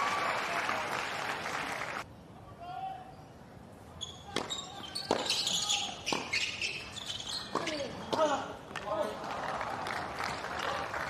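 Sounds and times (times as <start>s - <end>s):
shoe squeals on court: 4.0s - 8.4s
racket striking tennis ball: 4.3s - 6.6s
tennis ball bouncing: 4.4s - 8.3s.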